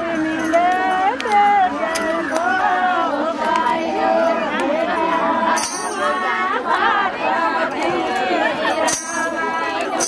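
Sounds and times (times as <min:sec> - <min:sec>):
women's voices overlapping: 0:00.0 - 0:10.0.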